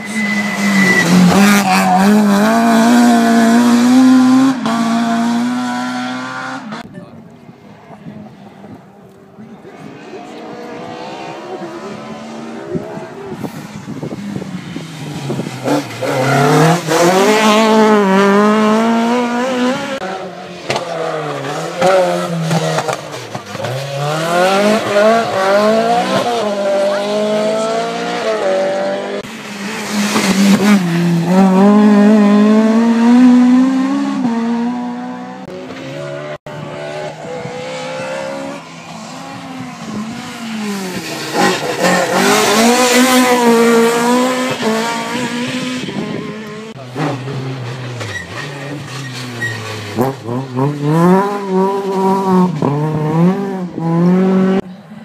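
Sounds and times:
rally car engines revving: 0.0 - 6.9, 7.6 - 55.0
cars passing close by: 7.6 - 55.0.

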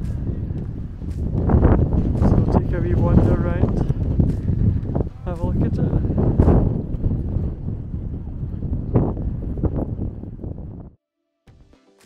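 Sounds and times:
background music: 0.0 - 6.8, 11.5 - 12.0
wind buffeting microphone: 0.0 - 11.0.

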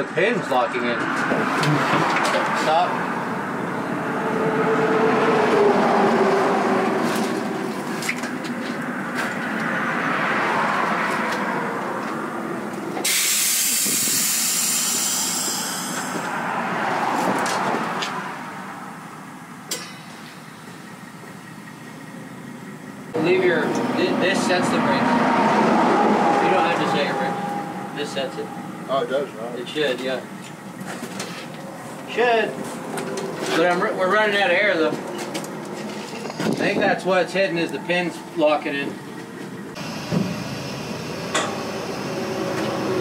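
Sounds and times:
truck and work noise: 0.0 - 43.0
compressed air hissing: 13.0 - 16.3.

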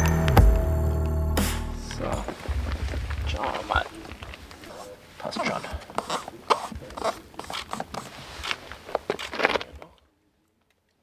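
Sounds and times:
hands rubbing foam box: 2.3 - 9.8.

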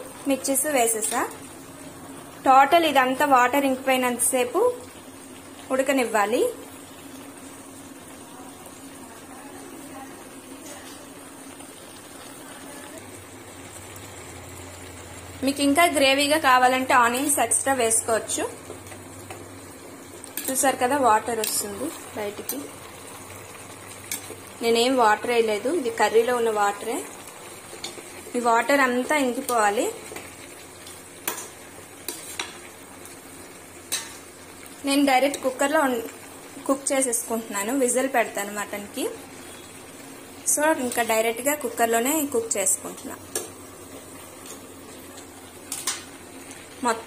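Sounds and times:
low simmering hiss: 0.0 - 47.0
meat sizzling: 0.0 - 47.0.

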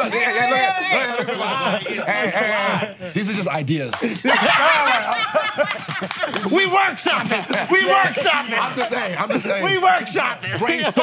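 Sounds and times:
people laughing: 0.0 - 11.0.

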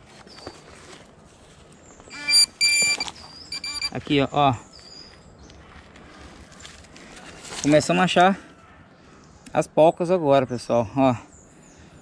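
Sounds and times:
metal detector buzzing tone: 2.1 - 4.0.

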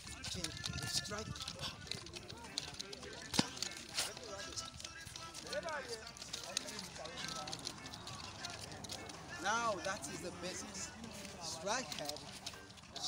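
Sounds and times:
wooden nunchaku clacking: 0.2 - 5.6.

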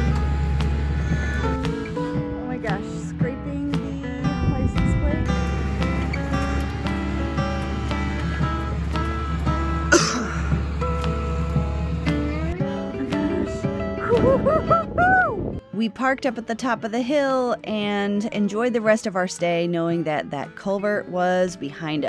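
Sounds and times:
background music with held notes: 0.0 - 22.0.

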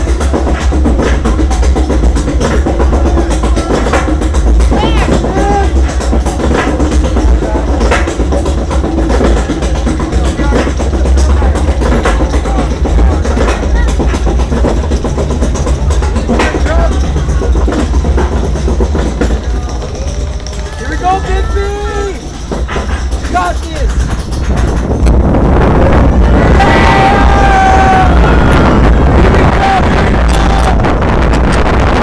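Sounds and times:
roller coaster rumbling: 0.0 - 32.0
people calling out: 4.7 - 5.8, 19.5 - 22.4.

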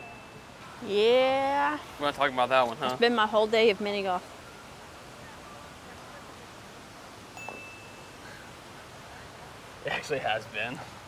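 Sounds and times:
brief high ringing tone: 0.0 - 0.6, 7.4 - 8.2
low hiss: 0.0 - 11.0.

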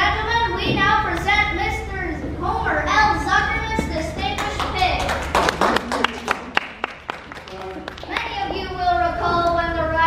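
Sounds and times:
voices: 0.0 - 6.5
scattered hand clapping: 4.3 - 8.4.

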